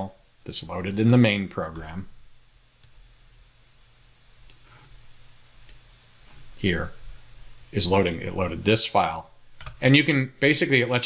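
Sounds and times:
low steady hum: 0:00.0 - 0:11.0
faint computer mouse click: 0:04.4 - 0:04.6.

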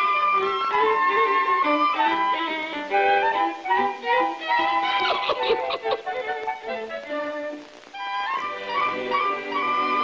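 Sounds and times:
string accompaniment: 0:00.0 - 0:10.0
violin melody: 0:00.0 - 0:10.0.

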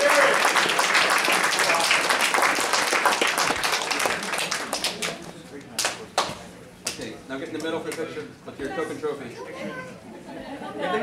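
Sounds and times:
indistinct chatter in a hall: 0:00.0 - 0:11.0.

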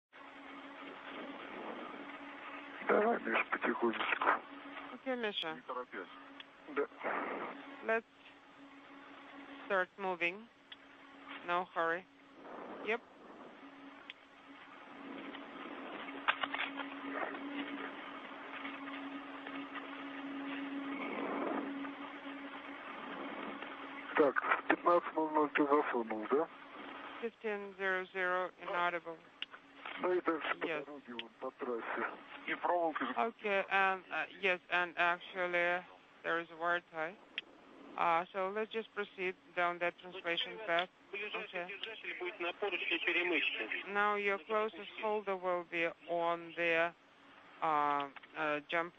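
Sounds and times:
low hum tone: 0:00.2 - 0:48.9
radio hiss: 0:00.5 - 0:37.2, 0:37.9 - 0:48.8
distorted radio voices: 0:00.7 - 0:08.0, 0:09.0 - 0:37.2, 0:38.0 - 0:46.9
man's voice over radio: 0:02.8 - 0:04.4, 0:24.2 - 0:26.4, 0:30.0 - 0:33.2, 0:40.2 - 0:45.1.

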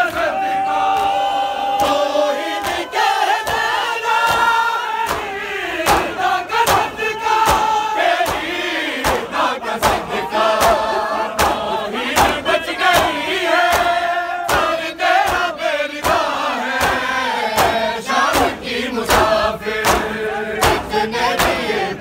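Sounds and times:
men chanting a lament: 0:00.0 - 0:22.0
hands slapping bare chests: 0:02.6 - 0:21.7.

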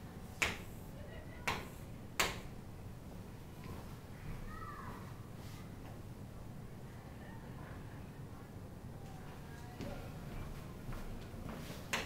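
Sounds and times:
low room hum: 0:00.0 - 0:12.0
chalk tapping on chalkboard: 0:00.4 - 0:00.7.

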